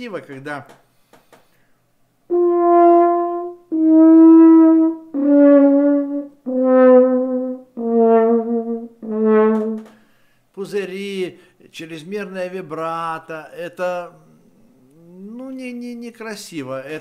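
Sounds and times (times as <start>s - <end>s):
french horn held notes: 2.3s - 10.0s.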